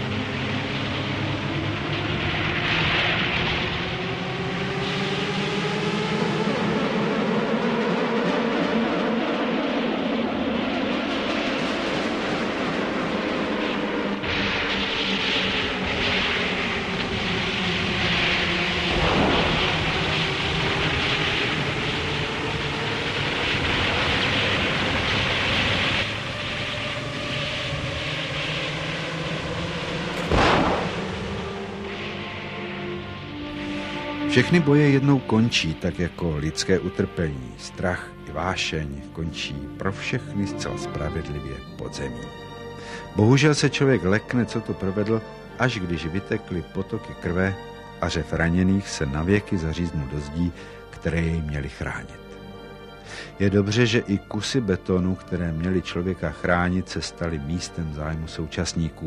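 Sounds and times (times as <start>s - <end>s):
loud explosion blast: 0.0s - 6.8s, 10.6s - 37.1s
engine drone: 0.0s - 38.3s
sharp bang: 13.7s - 34.7s.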